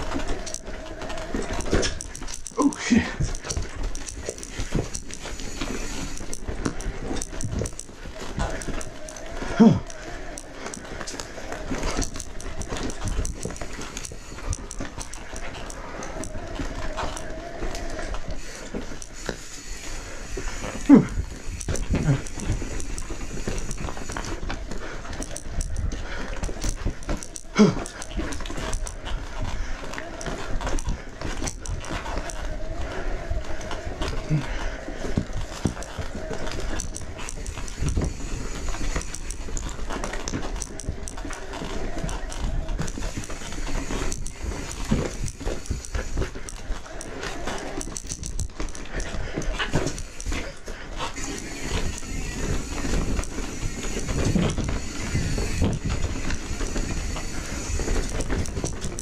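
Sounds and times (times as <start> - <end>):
bike rattling over rocks: 0.0 - 59.0
tyre and drivetrain noise: 0.0 - 59.0.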